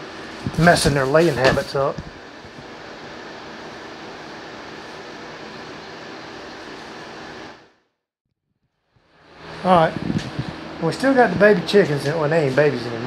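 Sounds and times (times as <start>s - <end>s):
electric fan whirring: 0.0s - 7.8s, 9.0s - 13.0s.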